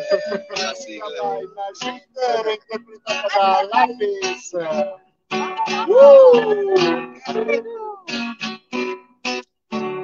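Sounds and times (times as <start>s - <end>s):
group of people singing: 0.0s - 4.1s
acoustic guitar strumming: 0.0s - 10.0s.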